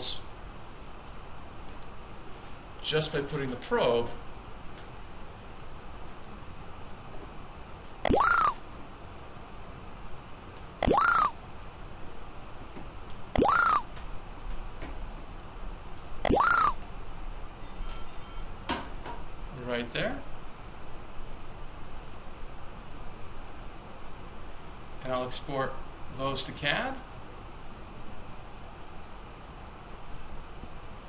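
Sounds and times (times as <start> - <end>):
short rising electronic beeps: 8.0 - 8.6, 10.8 - 11.3, 13.4 - 13.8, 16.3 - 16.8.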